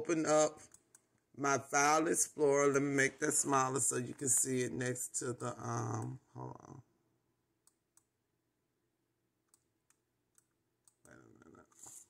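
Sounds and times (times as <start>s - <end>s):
computer mouse clicks: 0.6s - 1.3s, 9.5s - 12.0s.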